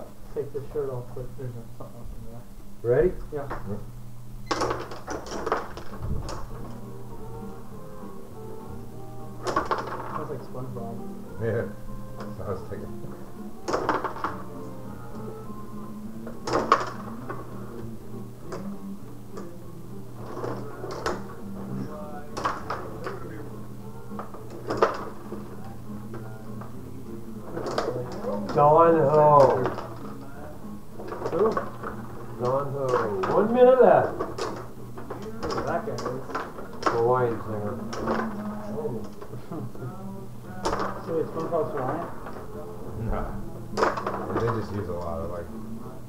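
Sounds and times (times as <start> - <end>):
background music with held notes: 0.0 - 46.0.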